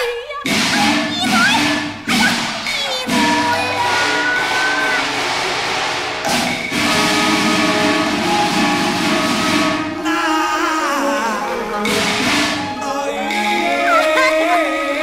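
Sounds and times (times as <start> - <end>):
loud dense percussion: 0.4 - 10.2, 11.8 - 14.6
sustained melody instruments: 3.0 - 15.0.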